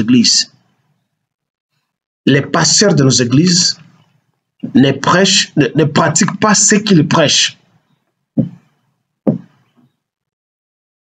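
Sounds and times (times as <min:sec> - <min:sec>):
short knocks: 0:08.4 - 0:08.7, 0:09.3 - 0:09.6.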